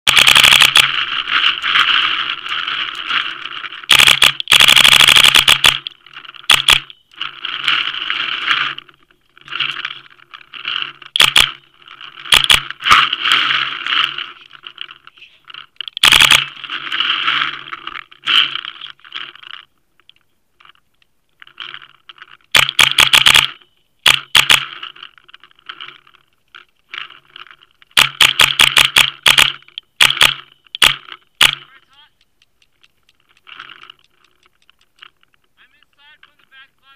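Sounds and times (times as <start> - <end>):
paintball marker popping: 28.0 - 35.4.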